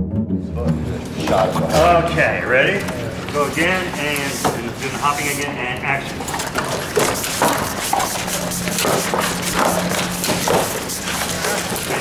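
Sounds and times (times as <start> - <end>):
puppet feet hopping on concrete: 6.1 - 12.0
puppet wing panels flapping: 6.2 - 12.0.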